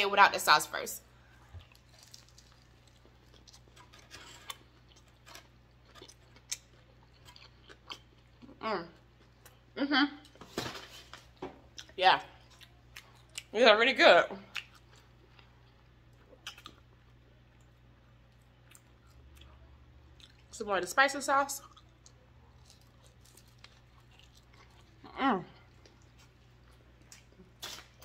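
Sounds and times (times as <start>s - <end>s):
crackly rustle of food: 1.2s - 8.5s, 21.6s - 28.0s.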